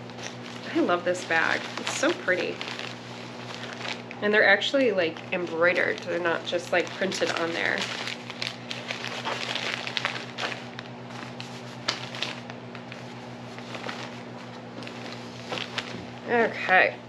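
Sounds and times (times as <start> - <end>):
paper and fabric rustling: 0.0 - 16.8
steady low hum: 0.0 - 17.0.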